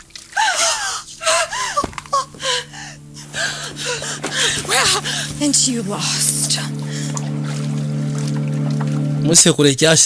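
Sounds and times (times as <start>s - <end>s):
women gasping and crying out: 0.4s - 5.4s.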